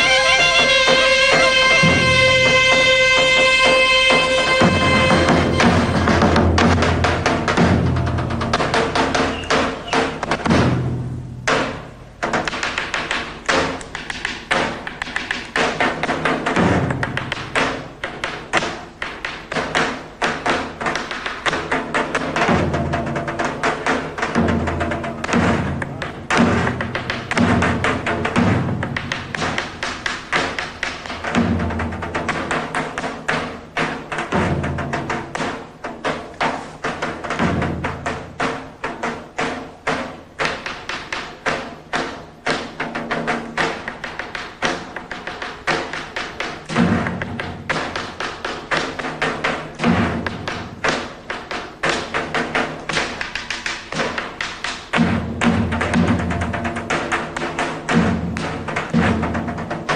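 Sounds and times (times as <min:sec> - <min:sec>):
clarinet melody: 0:00.0 - 0:06.6
bass drum beating: 0:00.0 - 0:11.6.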